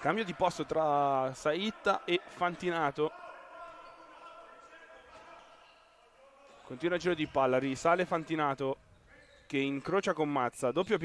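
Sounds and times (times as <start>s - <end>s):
sports hall ambience: 0.0s - 11.0s.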